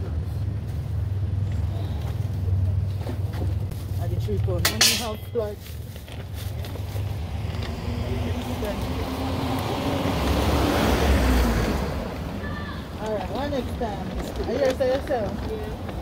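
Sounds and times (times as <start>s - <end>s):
voices: 7.0s - 16.0s.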